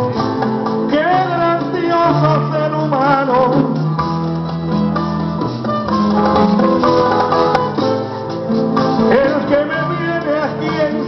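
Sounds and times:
band playing guitars: 0:00.0 - 0:11.0.

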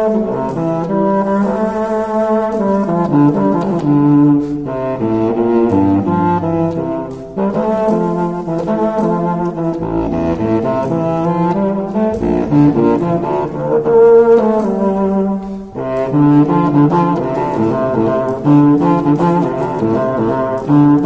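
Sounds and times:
contrabassoon playing funk: 0:00.0 - 0:21.0.

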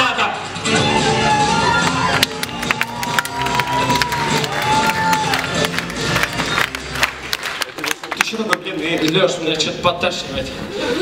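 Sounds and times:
audience cheering: 0:00.7 - 0:07.8
scattered applause: 0:01.0 - 0:09.2.

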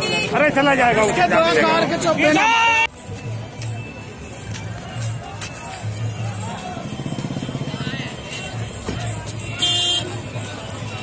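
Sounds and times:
vehicle engines running: 0:00.0 - 0:11.0
shrill multi-tone horn blast: 0:09.6 - 0:10.2.

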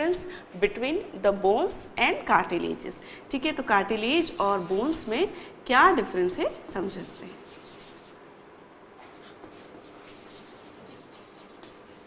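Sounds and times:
chalk scratching on blackboard: 0:04.0 - 0:05.1, 0:06.9 - 0:08.2, 0:09.1 - 0:12.0.

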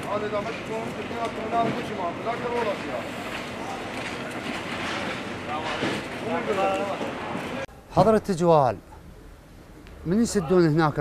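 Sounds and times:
noisy din of work: 0:00.0 - 0:11.0.

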